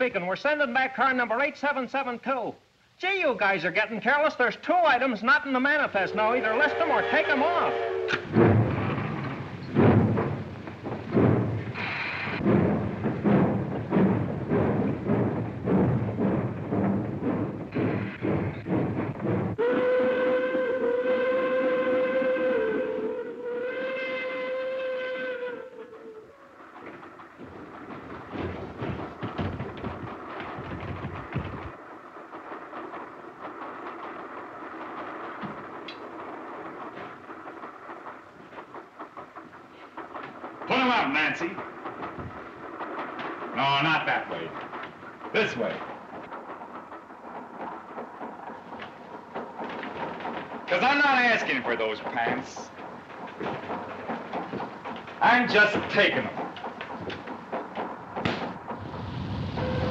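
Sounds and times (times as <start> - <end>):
steam locomotive chuffing: 0.0 - 59.9
steam whistle blasts: 6.0 - 8.3, 19.6 - 26.5, 59.2 - 59.9.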